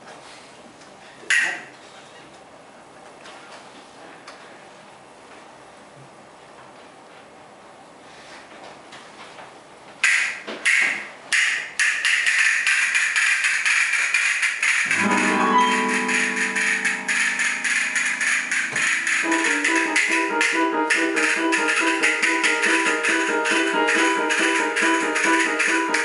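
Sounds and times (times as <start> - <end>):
castanets clicking: 10.0 - 15.0, 16.8 - 26.0
electronic keyboard playing: 14.8 - 26.0.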